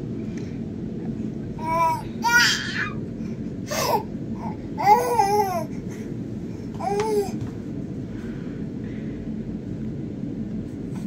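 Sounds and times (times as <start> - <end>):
low background hum: 0.0 - 11.0
baby babbling: 1.6 - 3.0.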